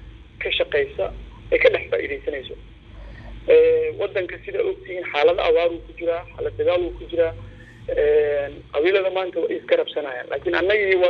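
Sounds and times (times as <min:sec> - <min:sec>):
person talking: 0:00.4 - 0:11.0.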